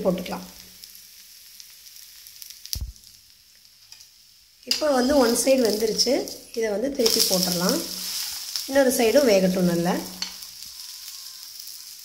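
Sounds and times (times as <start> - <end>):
pancake sizzling on hot griddle: 0.0 - 12.0.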